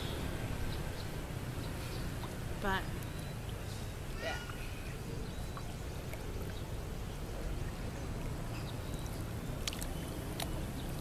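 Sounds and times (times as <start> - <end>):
pool water lapping: 0.0 - 11.0
small water splashes: 0.1 - 11.0.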